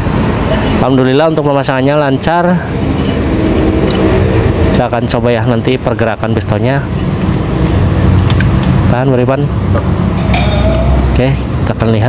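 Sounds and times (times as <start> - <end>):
engine rumbling: 0.0 - 12.0.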